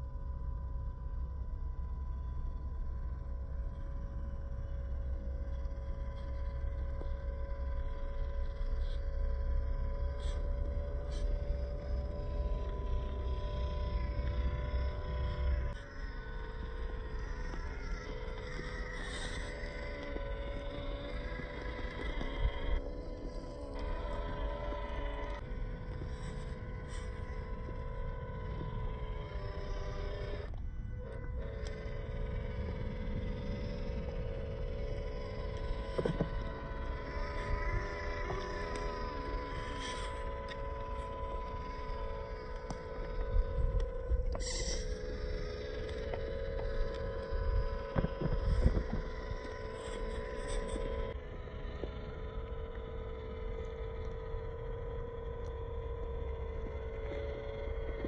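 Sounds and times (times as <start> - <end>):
electric motor and gearbox whining: 0.0 - 58.0
low rumbling noise: 0.0 - 58.0.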